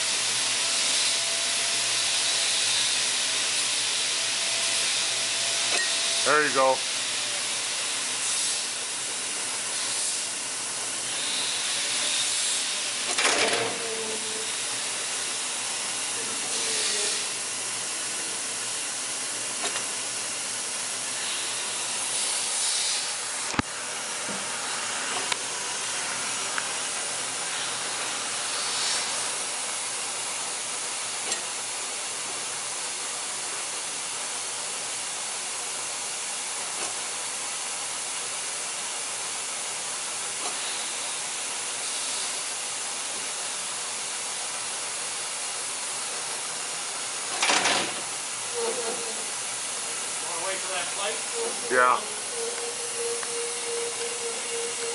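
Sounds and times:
machine hissing: 0.0 - 33.2, 39.2 - 54.9.

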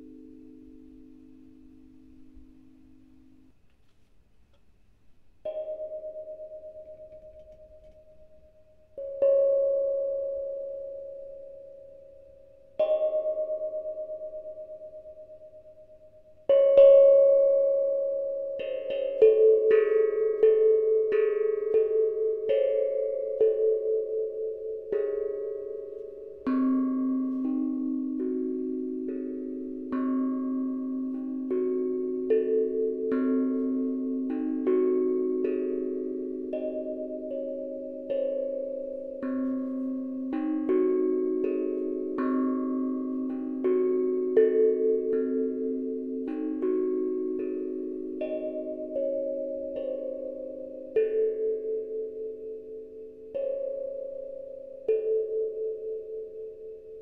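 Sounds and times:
steel tongue drum notes ringing: 0.0 - 3.6, 5.4 - 57.0.

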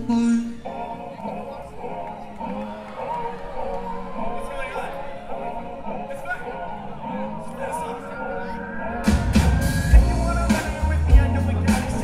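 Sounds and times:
man singing: 0.0 - 12.0
live band playing pop song: 8.6 - 12.0.

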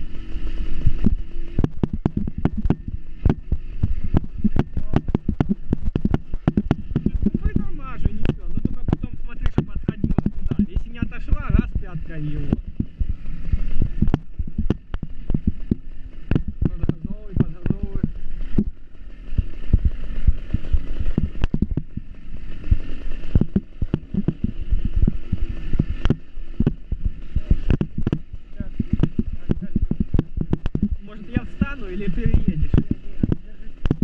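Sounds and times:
motorbike engine: 0.0 - 34.0
wind on microphone: 0.0 - 34.0.

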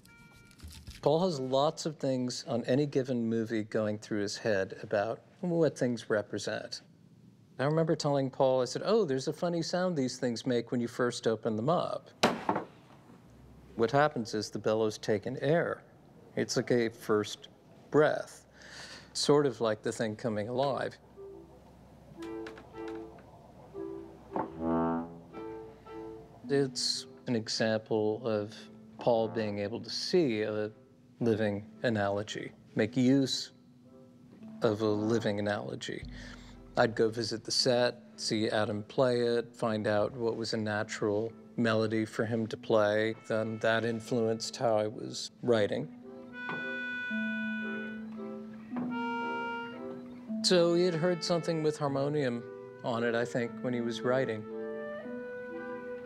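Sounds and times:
held low reedy note: 20.5 - 26.8, 29.0 - 29.9, 36.0 - 37.8
harmonium chords: 21.1 - 26.5, 46.3 - 50.2
repeating higher notes: 21.1 - 26.5, 36.0 - 37.6.

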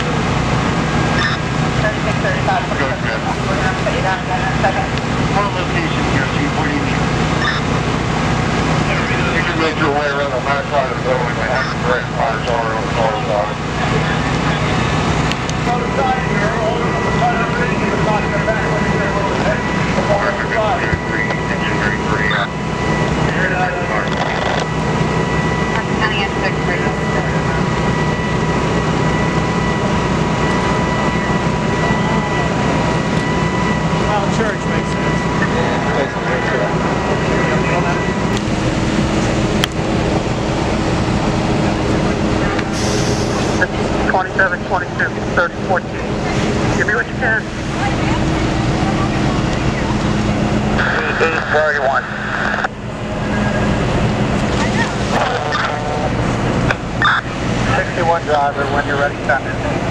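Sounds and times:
fire truck engines rumbling: 0.0 - 59.9
indistinct voices: 0.0 - 59.9.

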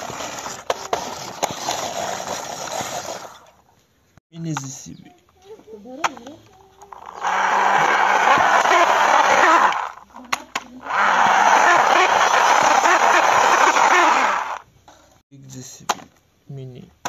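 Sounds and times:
plastic toy tracks grinding on concrete: 0.0 - 3.5, 6.0 - 14.6.

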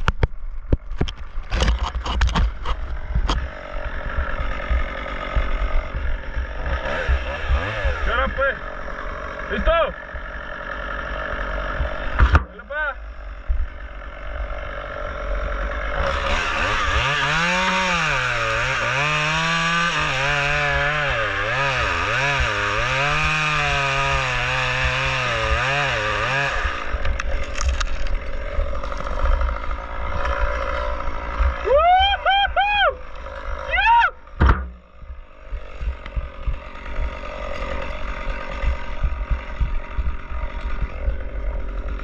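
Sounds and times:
chainsaw cutting wood: 0.0 - 42.0.

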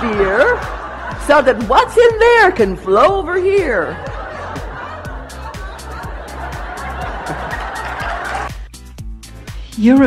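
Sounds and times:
audience laughing: 0.0 - 8.7
background music with steady beat: 0.0 - 10.0.

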